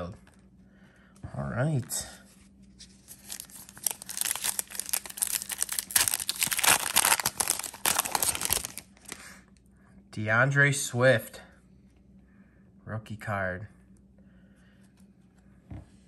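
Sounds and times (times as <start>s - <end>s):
foil wrapper tearing and crinkling: 3.0s - 9.2s.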